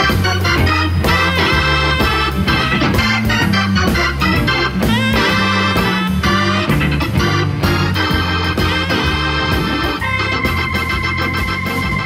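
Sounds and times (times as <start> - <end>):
drum beat: 0.0 - 12.0
organ playing blues chords: 0.0 - 12.0.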